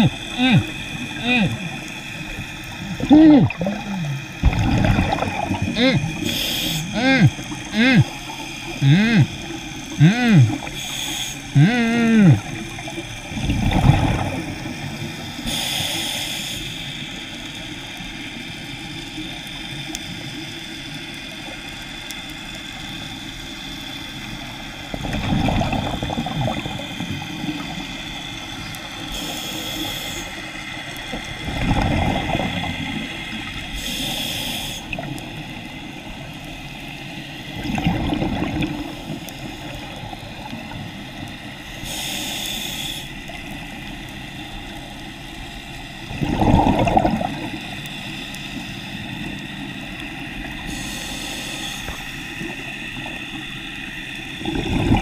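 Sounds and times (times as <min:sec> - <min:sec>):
regulator hiss on inhale: 0:00.0 - 0:04.4, 0:05.1 - 0:13.3, 0:14.2 - 0:25.1, 0:26.2 - 0:31.4, 0:32.2 - 0:37.6, 0:38.8 - 0:46.1, 0:47.4 - 0:54.4
exhaled bubbles rushing: 0:00.0 - 0:06.3, 0:12.3 - 0:15.1, 0:24.9 - 0:27.9, 0:31.4 - 0:33.6, 0:37.5 - 0:40.9, 0:46.0 - 0:47.8, 0:54.4 - 0:55.0
steady underwater hiss: 0:00.0 - 0:55.0.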